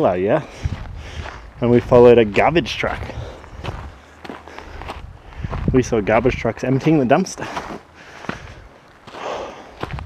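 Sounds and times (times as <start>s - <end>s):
footsteps on rocky dirt trail: 0.0s - 10.0s.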